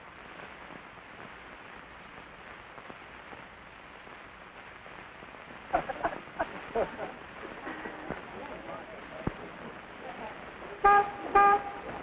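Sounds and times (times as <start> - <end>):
car horn honks: 10.8 - 11.9.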